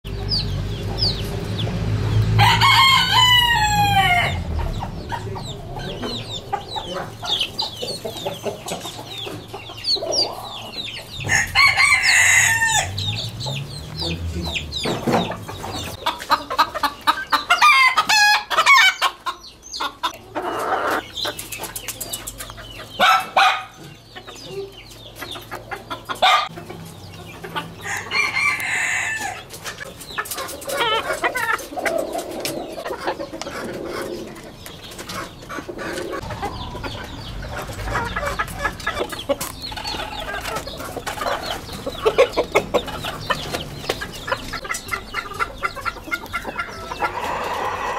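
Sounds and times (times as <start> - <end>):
chicks peeping: 0.0 - 47.9
rooster crowing: 2.3 - 4.6, 11.2 - 13.1, 27.8 - 29.5, 47.0 - 47.9.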